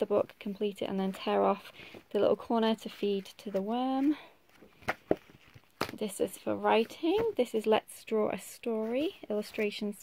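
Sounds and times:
book rustling: 0:00.4 - 0:07.6
book tapping: 0:04.8 - 0:06.0.

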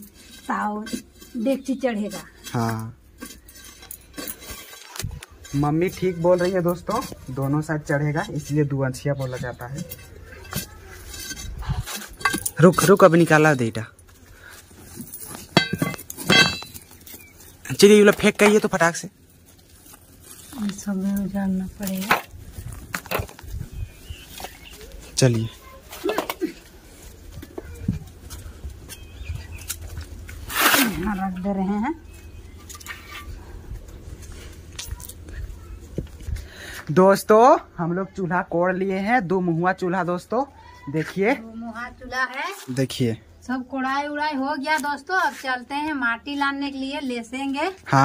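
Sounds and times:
scraping of brick and soil: 0:00.0 - 0:27.1, 0:28.1 - 0:31.6
metallic clinks of pan and rubble: 0:09.2 - 0:18.6.

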